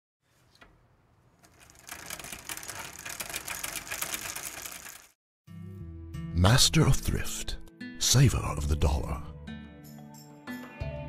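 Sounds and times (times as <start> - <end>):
rapid mechanical clicking rattle: 1.4 - 5.2.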